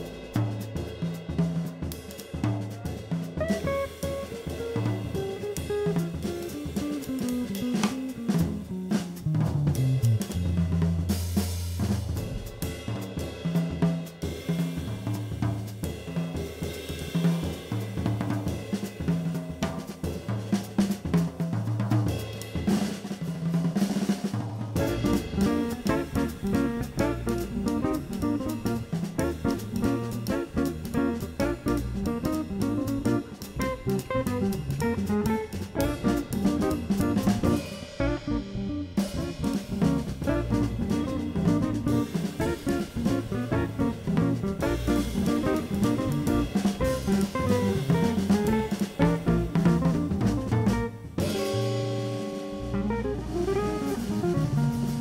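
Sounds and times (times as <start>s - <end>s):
jazz combo playing blues: 0.0s - 16.4s, 17.0s - 55.0s
drum kit: 0.0s - 55.0s.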